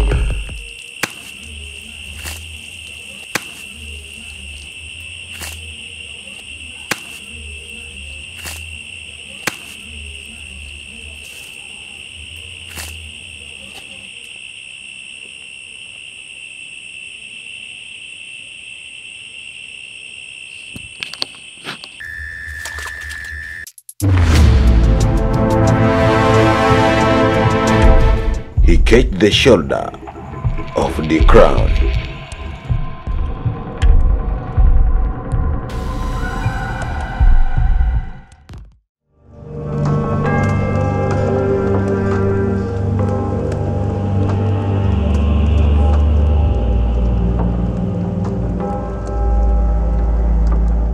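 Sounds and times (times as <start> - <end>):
slow pulsing low beat: 27.3 - 29.2, 30.1 - 38.2, 40.6 - 50.9.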